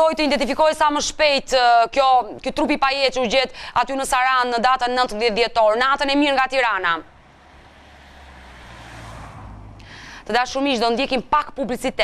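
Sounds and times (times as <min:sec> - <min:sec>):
low rumbling whoosh: 0:06.9 - 0:10.3.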